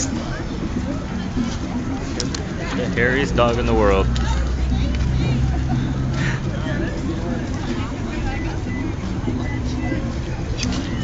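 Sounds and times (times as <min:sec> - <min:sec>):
people talking indistinctly: 0:00.0 - 0:11.0
vehicle engine humming: 0:00.0 - 0:11.0.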